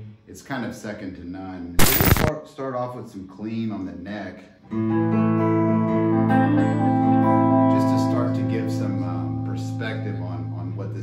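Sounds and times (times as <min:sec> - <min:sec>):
clean electric guitar chords: 0:04.7 - 0:11.0.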